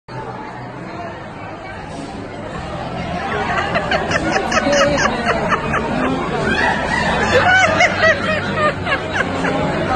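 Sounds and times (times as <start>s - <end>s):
restaurant background chatter: 0.1s - 9.9s.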